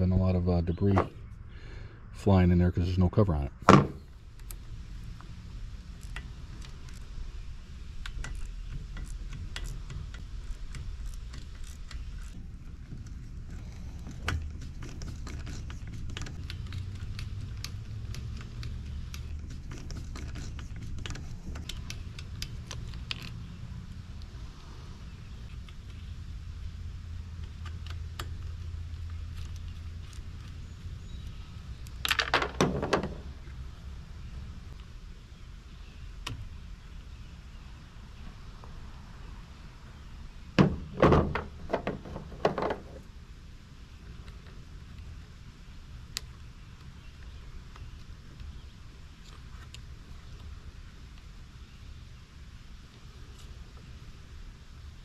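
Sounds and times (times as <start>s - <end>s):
low steady rumble: 0.0s - 55.0s
hand tool and plastic parts clicking: 8.0s - 23.6s, 27.4s - 30.6s
parts clattering: 32.0s - 33.4s.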